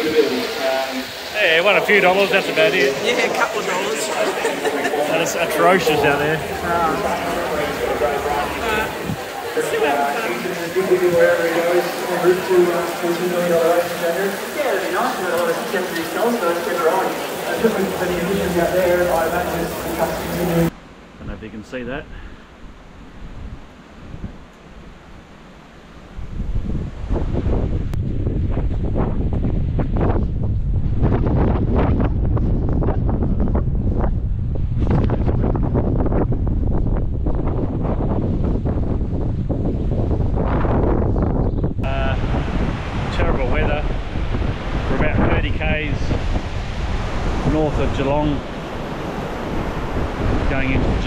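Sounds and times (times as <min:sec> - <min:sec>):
wind buffeting microphone: 0:01.1 - 0:20.8, 0:22.5 - 0:25.3, 0:26.0 - 0:51.0.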